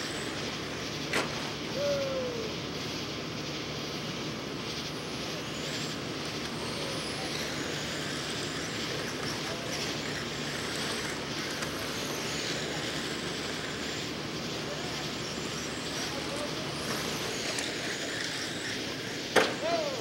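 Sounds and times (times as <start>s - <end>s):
electric motors whining: 0.0s - 20.0s
steady noise: 0.0s - 20.0s.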